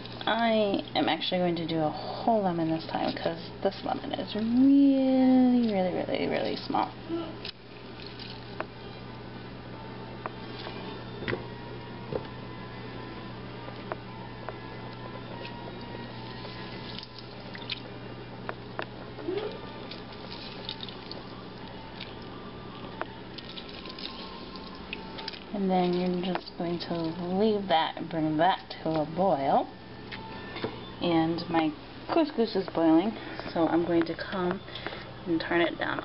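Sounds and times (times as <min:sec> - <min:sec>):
steady low hum: 0:00.0 - 0:36.0
juice dripping into water: 0:07.3 - 0:08.8, 0:13.7 - 0:27.2.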